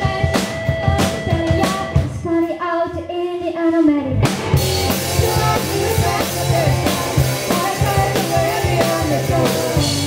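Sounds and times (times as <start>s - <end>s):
low band accompaniment: 0.0s - 2.3s, 4.1s - 10.0s
woman singing: 0.0s - 4.3s, 5.1s - 10.0s.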